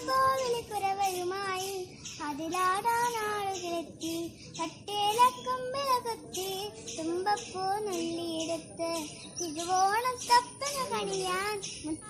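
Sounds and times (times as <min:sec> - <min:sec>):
girl singing: 0:00.0 - 0:12.0.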